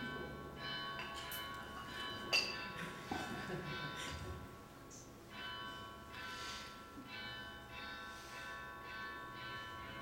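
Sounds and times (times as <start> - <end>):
bell ringing: 0.0 - 10.0.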